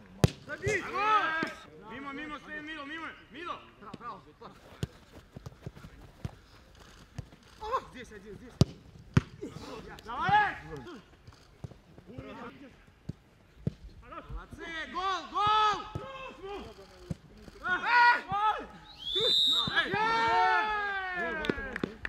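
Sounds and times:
ball being kicked: 0.2 - 0.5, 8.5 - 9.4
people shouting and calling out: 0.5 - 3.8, 9.4 - 11.1, 14.0 - 22.0.

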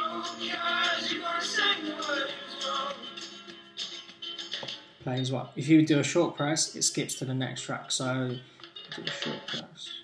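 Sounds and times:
song from small speaker: 0.0 - 5.2, 8.0 - 10.0.

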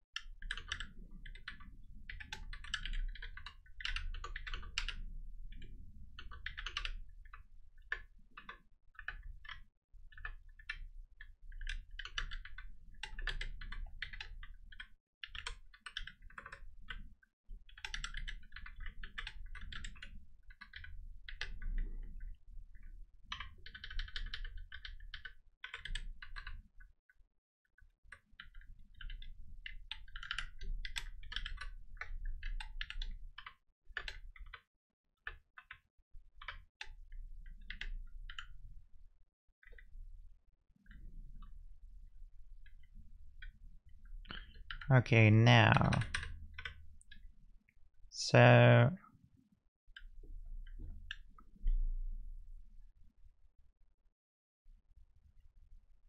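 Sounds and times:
typing on computer keyboard: 0.2 - 17.1, 17.7 - 26.7, 27.8 - 38.6, 42.6 - 44.9, 45.8 - 47.3.

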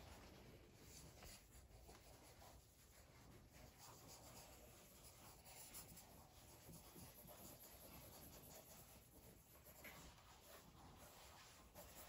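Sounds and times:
pencil scratching on paper: 0.8 - 12.0.

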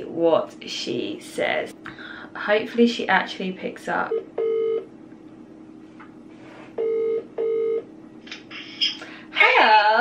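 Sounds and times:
phone ringing tone: 6.8 - 7.8.

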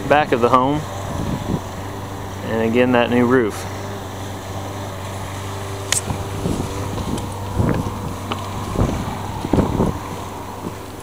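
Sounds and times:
low mechanical hum: 0.0 - 11.0
sharp click: 5.9 - 6.1.

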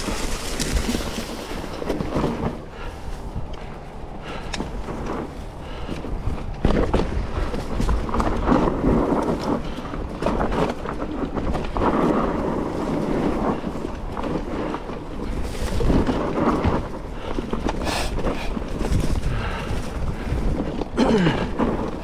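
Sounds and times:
bike knocking and rattling: 0.0 - 22.0
tyres rumbling on dirt: 0.0 - 22.0
wind buffeting microphone: 0.0 - 22.0.

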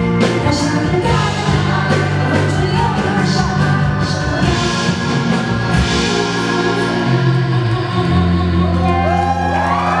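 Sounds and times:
live pop band playing: 0.0 - 10.0
person singing: 0.0 - 10.0
rising whoops: 8.7 - 10.0.

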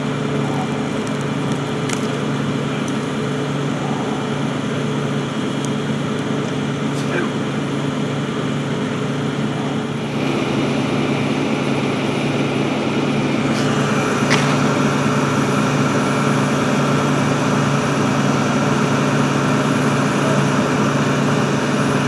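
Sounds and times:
truck engine idling: 0.0 - 22.0.

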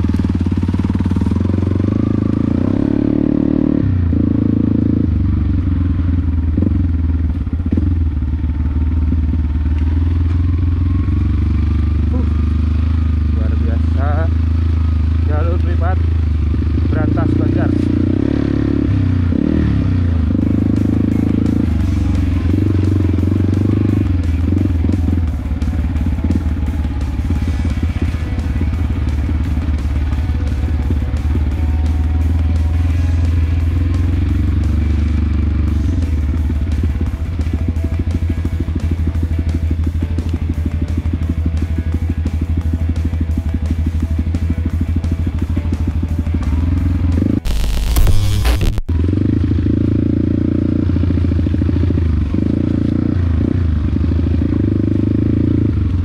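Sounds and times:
motorcycle engine revving: 0.0 - 56.0
background music: 17.1 - 48.4.

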